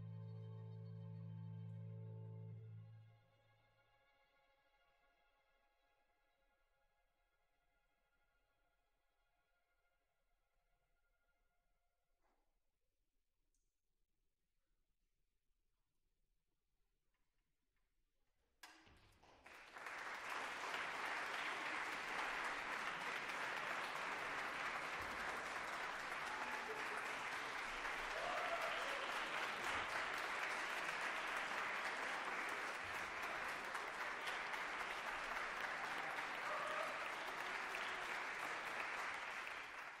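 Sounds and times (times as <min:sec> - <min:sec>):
audience applauding: 0:19.2 - 0:40.0.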